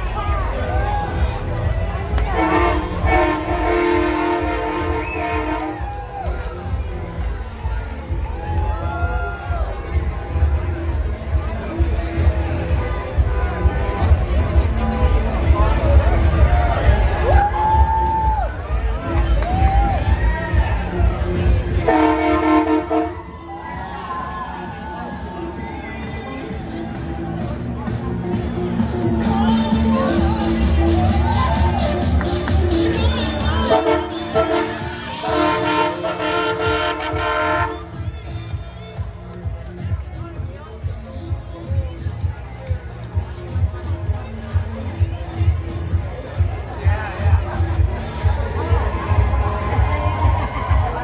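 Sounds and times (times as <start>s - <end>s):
multi-tone air horn chord: 2.3s - 5.8s, 21.8s - 23.3s, 33.5s - 38.4s.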